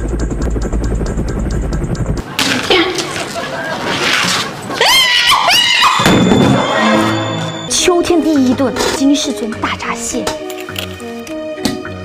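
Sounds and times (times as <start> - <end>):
helicopter rotor chopping: 0.0 - 3.8.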